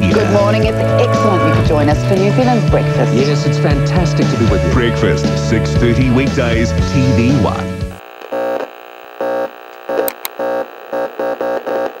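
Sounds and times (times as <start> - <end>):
buzzy glitch tones: 0.0 - 3.4, 8.0 - 12.0
sharp clicks: 9.7 - 10.4.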